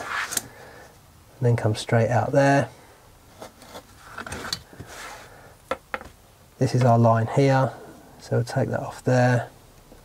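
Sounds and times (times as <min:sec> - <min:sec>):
scraping and rustling of leather: 0:00.0 - 0:00.5, 0:03.3 - 0:05.3.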